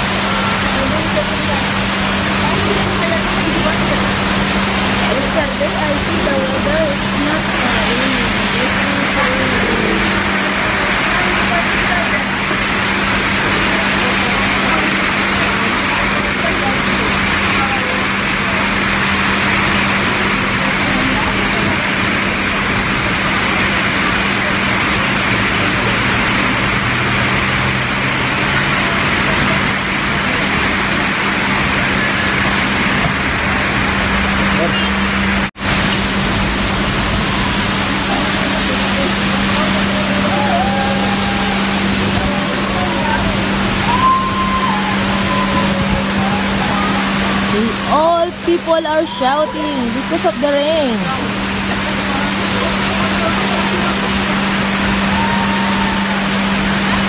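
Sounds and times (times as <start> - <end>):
cars passing on wet road: 0.0 - 57.0
heavy rain falling: 0.0 - 57.0
steady low hum: 0.0 - 57.0.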